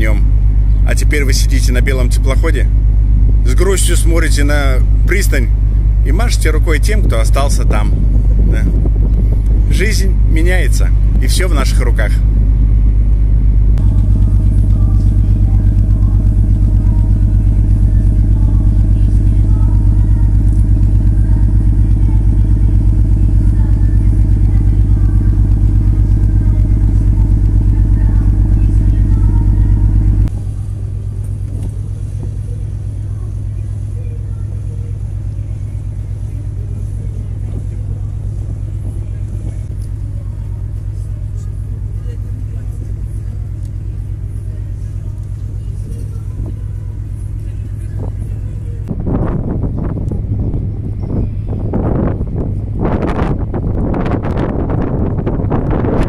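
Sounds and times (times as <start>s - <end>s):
ship diesel engines throbbing: 0.0s - 56.0s.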